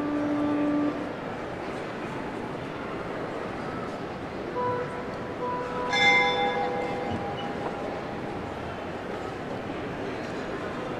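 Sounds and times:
steady background noise: 0.0 - 10.9
church bells ringing: 5.6 - 8.4.

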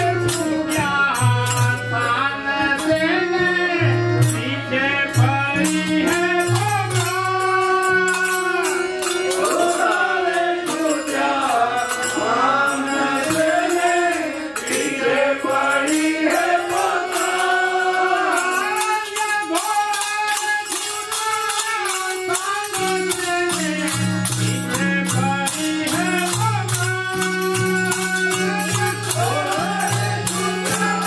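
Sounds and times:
devotional song singing: 0.0 - 31.0
harmonium: 0.0 - 31.0
jingling hand percussion: 0.0 - 31.0.

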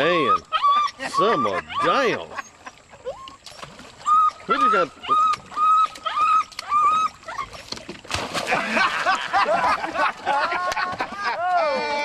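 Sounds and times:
small dog yipping: 0.2 - 1.9, 4.0 - 7.6.

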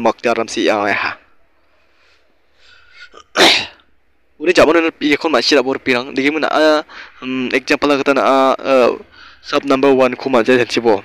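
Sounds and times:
person sneezing: 3.0 - 3.9.

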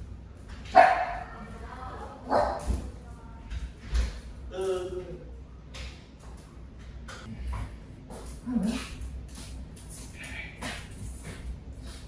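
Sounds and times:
dog barking: 0.7 - 1.2, 2.3 - 2.7.

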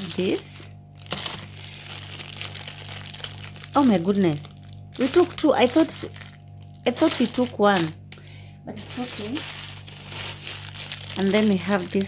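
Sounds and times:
cellophane crinkling: 0.0 - 12.0.

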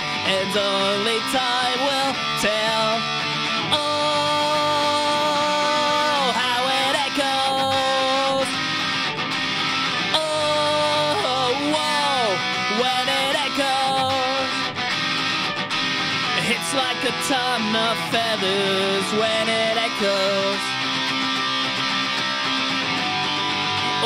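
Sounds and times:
electric guitar strummed chords: 0.0 - 24.0
sliding guitar melody: 0.0 - 24.0.

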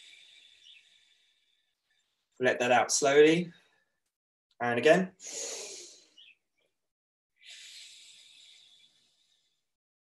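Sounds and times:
man breathing in through nose: 5.2 - 6.2, 7.4 - 9.6
slow breath out: 5.2 - 6.2, 7.4 - 9.7.

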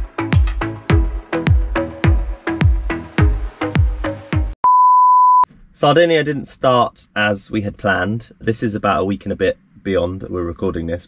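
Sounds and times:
upbeat electronic music: 0.0 - 4.6
electronic beep tone: 4.6 - 5.5
man talking: 5.8 - 11.0.

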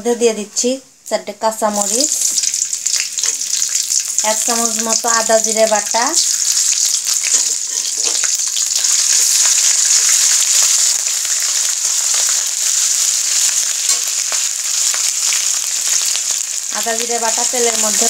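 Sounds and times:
spices sizzling in hot oil: 1.7 - 18.0.

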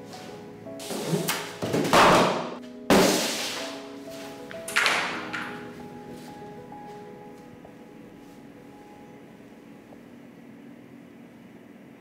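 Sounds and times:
soft background music: 0.0 - 10.3.

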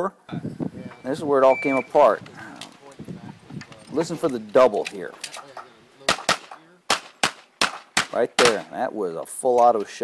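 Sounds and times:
rapid pistol shots: 6.0 - 8.7.

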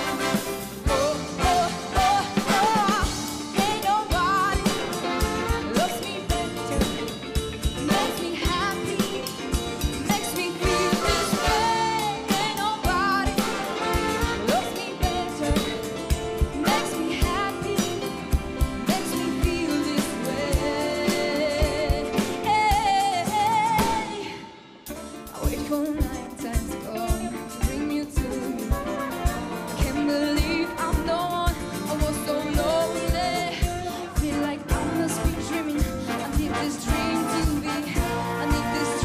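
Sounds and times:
horns: 0.0 - 7.1, 10.0 - 22.3, 28.6 - 32.6, 34.3 - 39.0
cymbals: 0.0 - 22.5
big band playing funk-pop: 0.0 - 39.0
drum kit beat: 0.0 - 39.0.

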